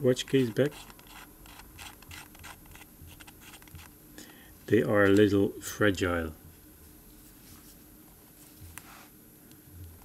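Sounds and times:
fingertips scratching watch case: 0.2s - 3.9s.

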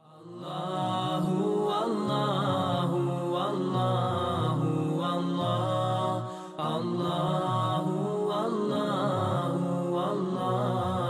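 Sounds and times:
sung vocal chant: 0.0s - 11.0s.

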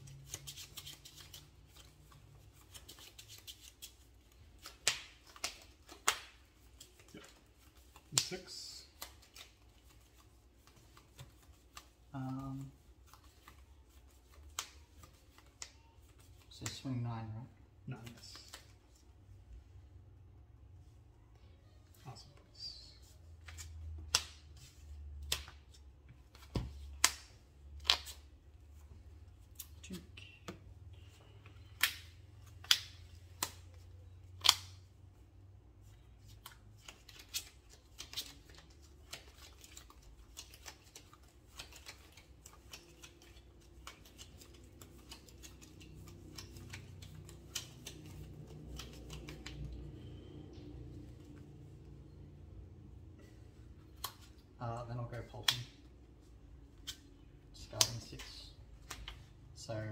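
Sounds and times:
cards clicking on table: 36.4s - 49.8s.

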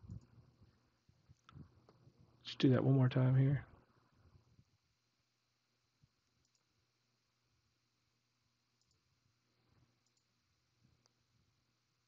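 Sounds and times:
computer mouse clicks: 6.2s - 6.7s, 8.8s - 9.1s, 10.0s - 10.4s.

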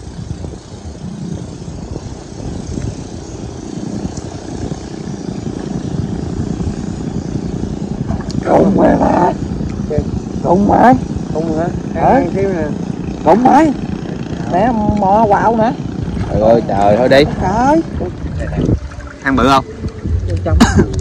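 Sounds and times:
wind and water rumble: 0.0s - 21.0s.

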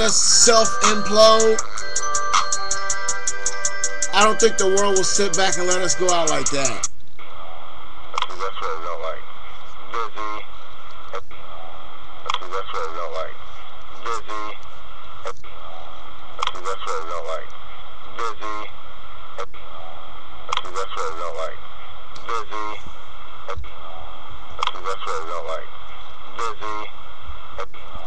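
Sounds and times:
voice over radio: 0.0s - 1.6s, 4.2s - 6.9s, 9.9s - 10.6s, 12.4s - 14.7s, 18.2s - 18.7s, 22.2s - 22.9s, 24.8s - 25.7s, 26.4s - 27.0s
steady hiss and hum: 0.0s - 16.6s.

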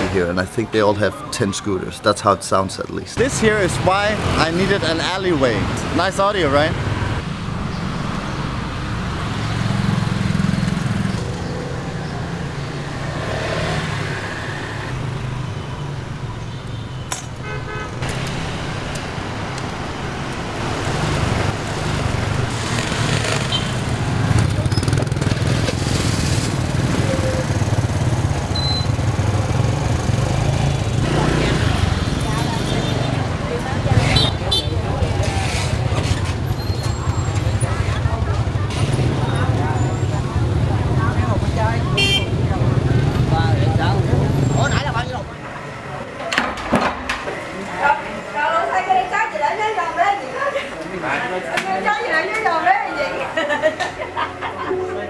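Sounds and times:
voices of people: 0.0s - 6.8s, 30.4s - 55.0s
motor scooter traffic: 0.0s - 55.0s
horn toots: 41.9s - 42.4s.

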